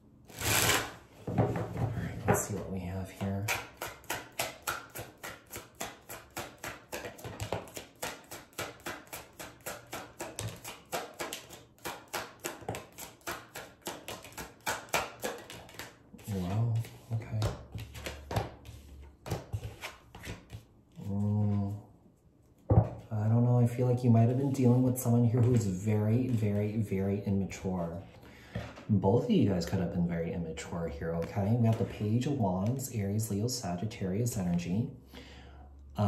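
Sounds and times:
cards shuffled by hand: 0:00.3 - 0:01.0, 0:03.4 - 0:21.2.

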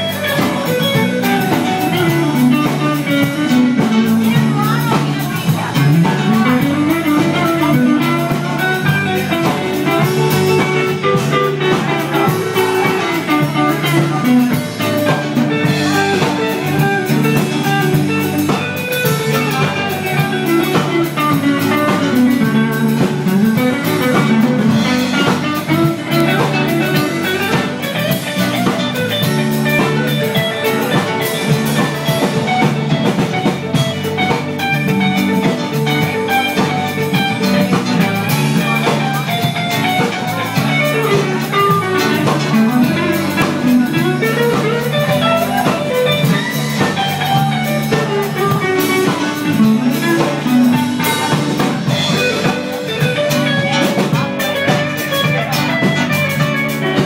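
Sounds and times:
bass: 0:00.0 - 0:57.0
bending electric guitar lead: 0:00.0 - 0:57.0
drum kit: 0:00.0 - 0:57.0.

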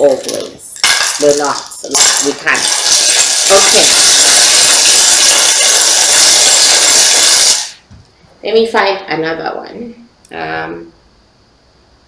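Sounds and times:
shells rattling in wooden bowl: 0:00.0 - 0:07.8.

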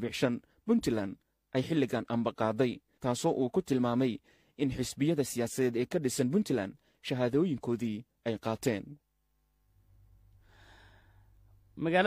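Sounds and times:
person speaking: 0:00.0 - 0:09.0, 0:11.7 - 0:12.0
faint breath drawn in: 0:10.4 - 0:11.5.

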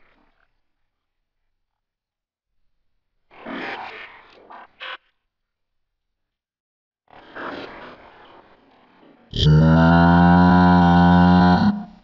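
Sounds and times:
cartoon character's low cry: 0:09.4 - 0:12.0.

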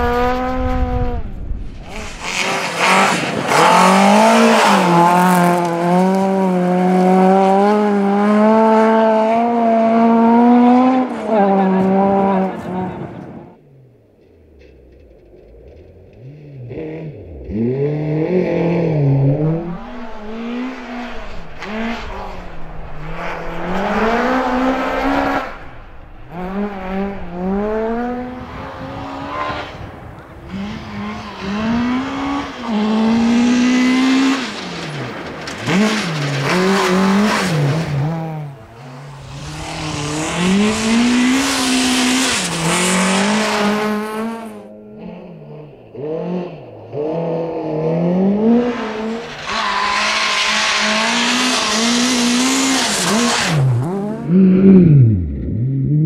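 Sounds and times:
rally car engine revving: 0:00.0 - 0:56.0.

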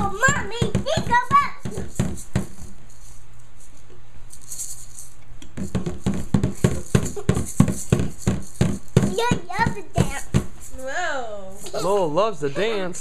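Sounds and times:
drum beating: 0:00.0 - 0:02.9, 0:05.5 - 0:11.0
toy maracas shaking: 0:00.0 - 0:12.0.

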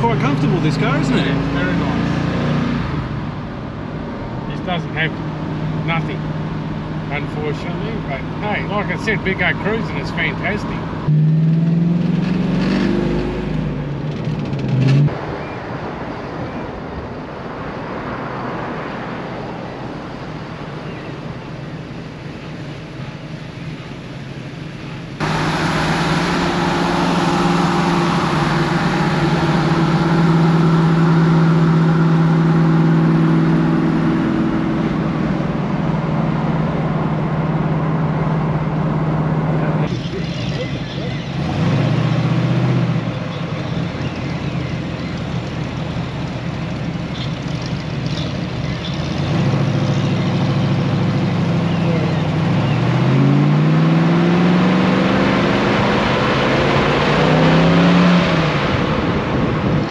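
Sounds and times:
car engine droning: 0:00.0 - 0:59.9
road and wind noise: 0:00.0 - 0:59.9.

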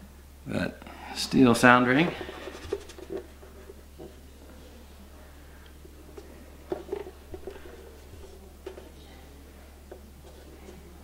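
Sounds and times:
guitar handling knocks and rubs: 0:07.3 - 0:08.7.

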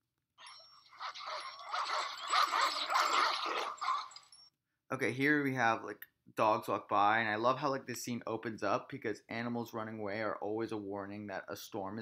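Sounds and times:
dogs running past: 0:01.0 - 0:04.3.

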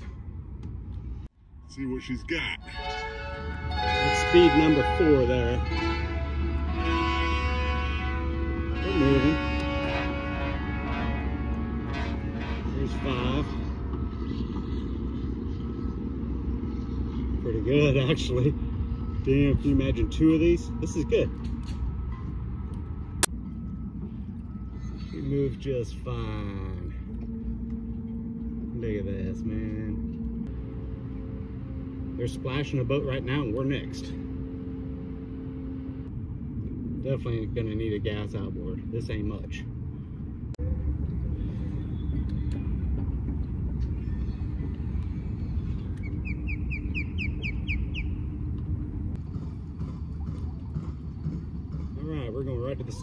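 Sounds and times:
bird chirping: 0:43.8 - 0:48.4.

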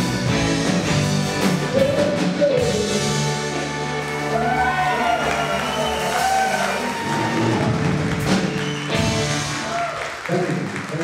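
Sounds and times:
rock band playing: 0:00.0 - 0:10.9.

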